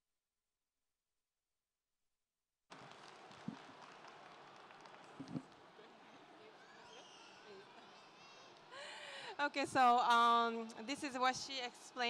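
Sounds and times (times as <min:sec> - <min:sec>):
faint hall ambience hiss: 0:02.7 - 0:12.0.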